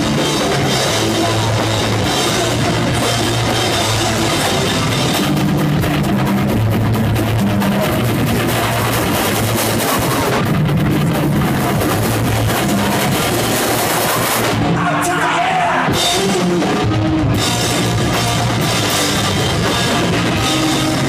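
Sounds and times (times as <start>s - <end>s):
bass guitar: 0.0s - 21.0s
electric guitar: 0.0s - 21.0s
steady drumming: 0.0s - 21.0s.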